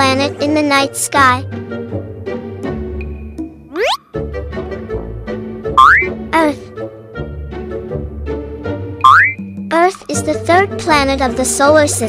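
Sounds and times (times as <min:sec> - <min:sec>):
light children's background music: 0:00.0 - 0:12.0
cartoon upward pitch slide: 0:03.7 - 0:04.1, 0:05.8 - 0:06.2, 0:09.0 - 0:09.4
person speaking: 0:06.3 - 0:06.6.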